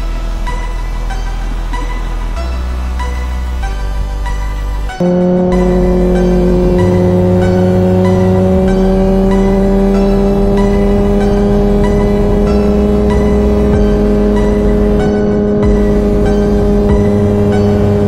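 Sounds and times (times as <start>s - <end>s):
background music with bass line: 0.0s - 18.0s
motorcycle engine at high revs: 5.0s - 18.0s.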